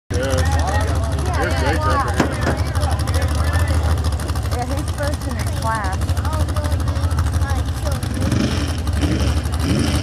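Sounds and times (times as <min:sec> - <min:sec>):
crowd talking: 0:00.1 - 0:09.7
truck engine rumble: 0:00.1 - 0:10.0.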